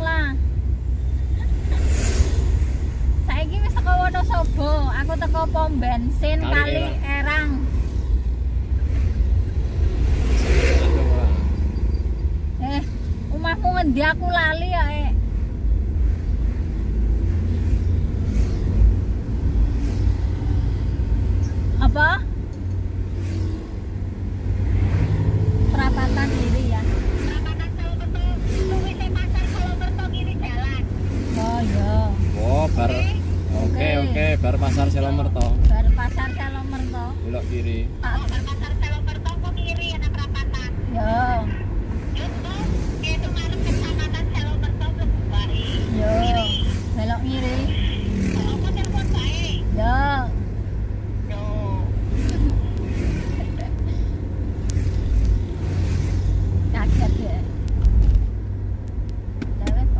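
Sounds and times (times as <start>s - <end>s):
car engine and tyres rumbling: 0.0s - 59.9s
person talking: 6.2s - 7.3s.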